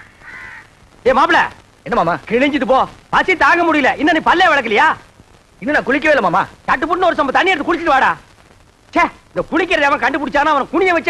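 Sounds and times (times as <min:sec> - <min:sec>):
crow cawing: 0:00.0 - 0:00.8.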